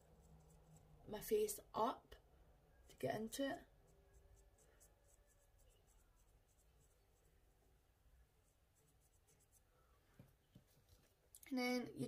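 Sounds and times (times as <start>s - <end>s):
makeup brush scratching: 0.0s - 1.3s, 3.6s - 9.7s
faint room hum: 0.0s - 12.0s.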